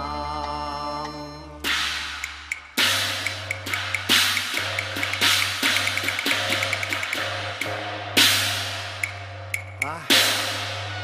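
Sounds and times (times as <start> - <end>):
cymbal crashes: 1.6 - 11.0.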